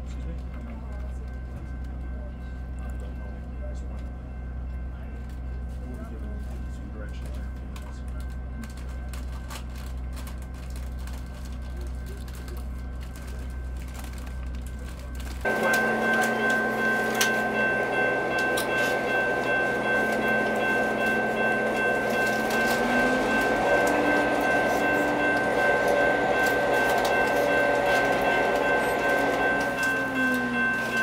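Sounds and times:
diesel locomotive engine idling: 0:00.0 - 0:31.0.

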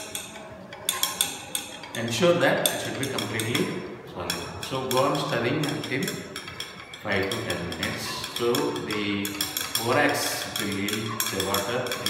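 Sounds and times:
glass rod clinking in beaker: 0:00.0 - 0:12.0.

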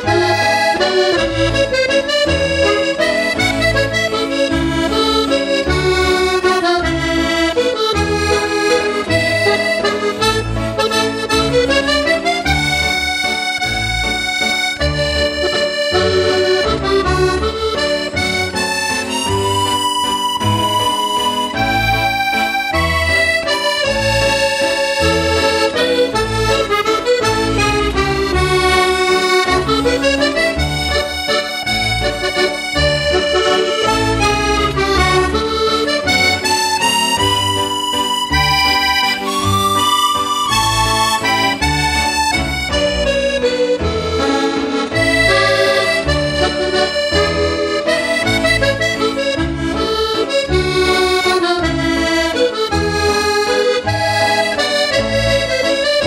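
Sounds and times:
button accordion waltz: 0:00.0 - 0:56.0.

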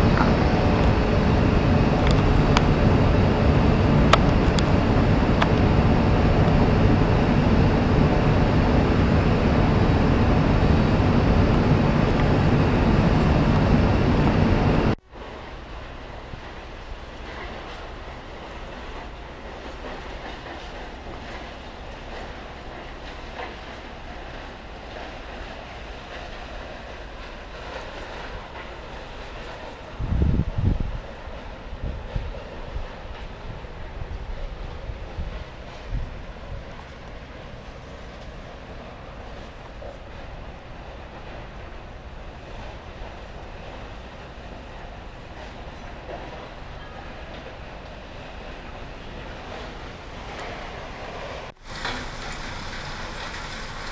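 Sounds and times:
wind buffeting microphone: 0:00.0 - 0:51.6
outdoor background noise: 0:00.0 - 0:53.9.

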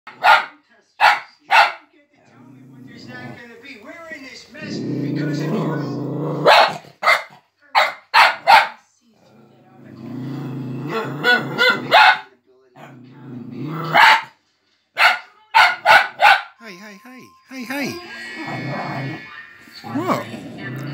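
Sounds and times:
puppy barking: 0:00.1 - 0:01.9, 0:06.4 - 0:08.9, 0:11.2 - 0:12.4, 0:13.8 - 0:14.4, 0:15.0 - 0:16.6.

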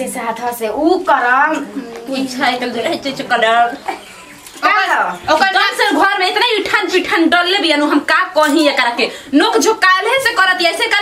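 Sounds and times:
women speaking: 0:00.0 - 0:11.0.

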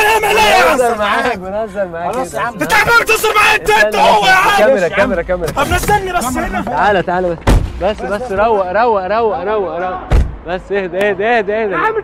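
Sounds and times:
men's agitated voices: 0:00.0 - 0:12.0
sharp loud bang: 0:07.4 - 0:08.0.

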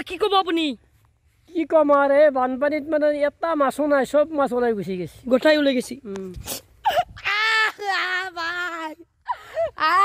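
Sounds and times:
boy wailing: 0:06.8 - 0:10.0.

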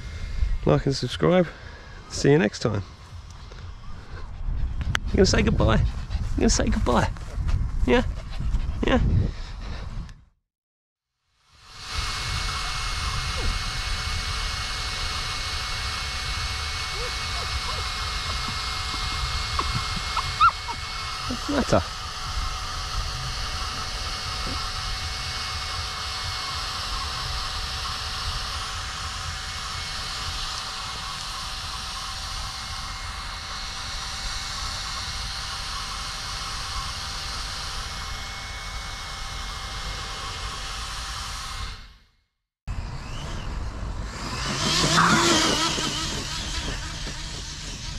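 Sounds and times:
faint hums: 0:00.0 - 0:10.2, 0:11.7 - 0:41.3, 0:42.7 - 0:47.9
rc car passing at speed: 0:42.7 - 0:47.9.

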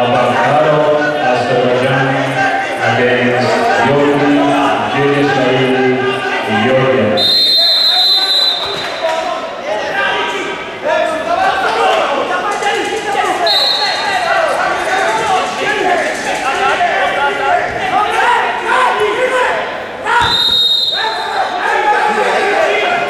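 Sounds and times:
voices in a hall: 0:00.0 - 0:23.0
referee's whistle: 0:07.2 - 0:09.1, 0:13.4 - 0:14.2, 0:20.2 - 0:21.5.

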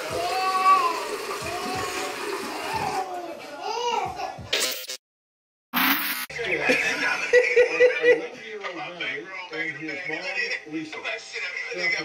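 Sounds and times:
tap water running into sink: 0:00.0 - 0:03.1.

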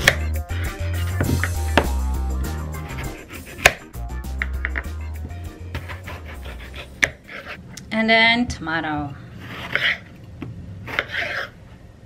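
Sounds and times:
background music with bass: 0:00.0 - 0:07.0.

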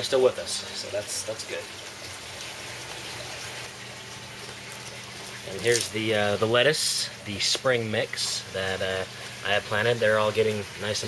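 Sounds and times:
water running and trickling: 0:00.0 - 0:11.0.

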